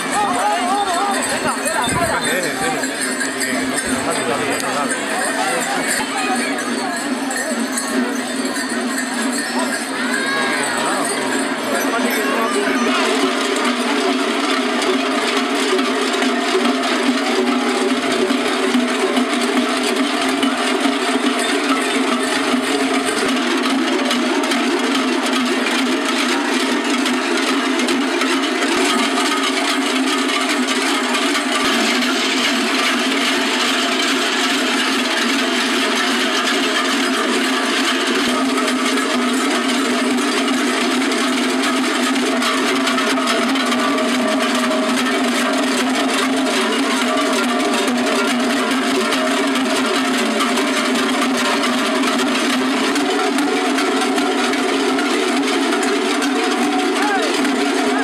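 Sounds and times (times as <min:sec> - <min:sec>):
large cowbells clanging: 0:00.0 - 0:58.0.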